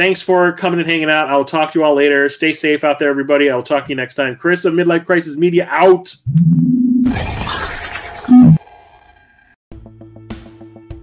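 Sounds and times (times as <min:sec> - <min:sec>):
low electronic tone: 0:06.2 - 0:07.1, 0:08.3 - 0:08.6
loud crash: 0:07.0 - 0:09.6.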